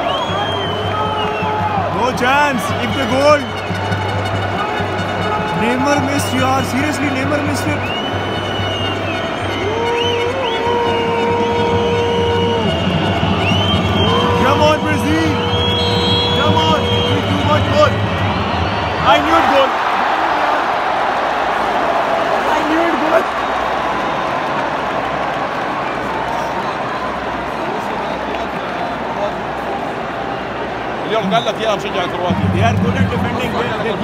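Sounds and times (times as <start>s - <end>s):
crowd noise surge: 0.0s - 34.0s
stadium crowd din: 0.0s - 34.0s.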